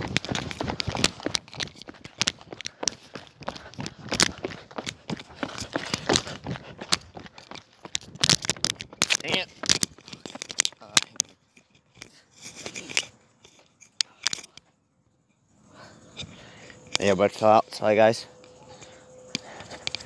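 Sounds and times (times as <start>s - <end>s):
footsteps: 0.0s - 14.8s, 18.2s - 20.0s.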